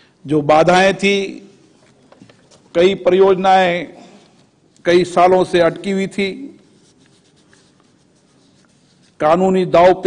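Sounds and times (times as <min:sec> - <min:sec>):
man speaking into a microphone: 0:00.2 - 0:01.7, 0:02.7 - 0:06.8, 0:09.2 - 0:10.0.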